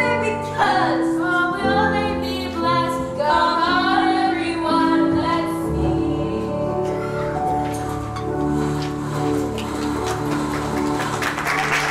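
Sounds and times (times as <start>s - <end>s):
keyboard playing slow chords: 3.8s - 11.9s.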